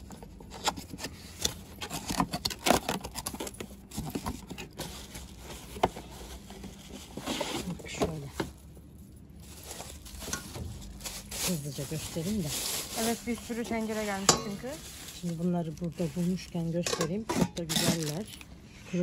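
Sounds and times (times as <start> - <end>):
plastic crinkling: 0.8 - 17.0, 17.7 - 18.5.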